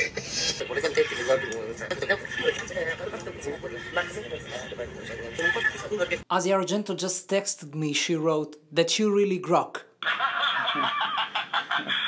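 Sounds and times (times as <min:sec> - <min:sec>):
background noise: 0:00.0 - 0:12.0
voices talking: 0:00.4 - 0:06.3.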